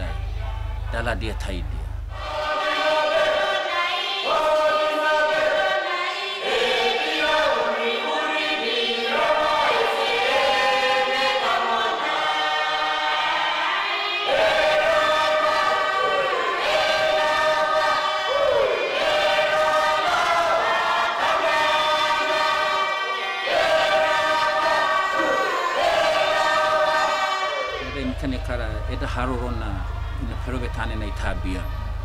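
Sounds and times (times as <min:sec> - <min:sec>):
mixed choir singing a hymn: 0:02.1 - 0:32.0.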